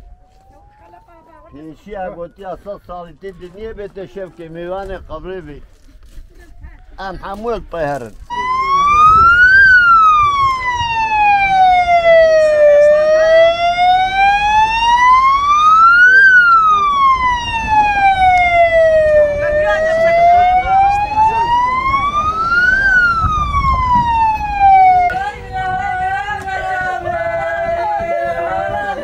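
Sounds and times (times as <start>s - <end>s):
siren wailing: 0.0s - 1.6s, 8.3s - 25.2s.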